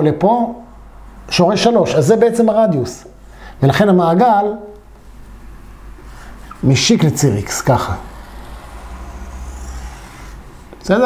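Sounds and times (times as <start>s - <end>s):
steady low hum: 0.0s - 11.0s
marker pen on whiteboard: 6.0s - 10.9s.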